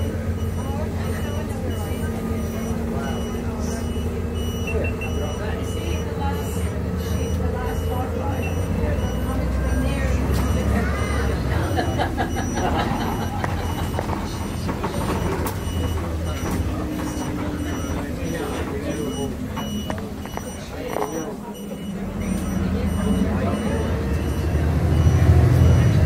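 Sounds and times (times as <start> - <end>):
bus engine rumble: 0.0 - 26.0
high electronic beep: 0.4 - 14.6, 15.6 - 26.0.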